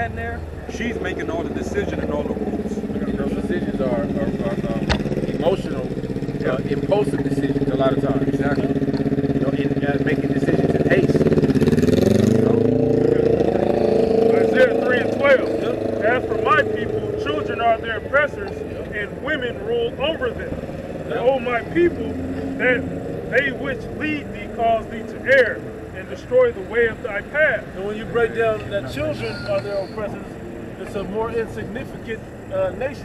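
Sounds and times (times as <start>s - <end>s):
car engine revving and pulling away: 0.0s - 33.0s
street noise: 0.0s - 33.0s.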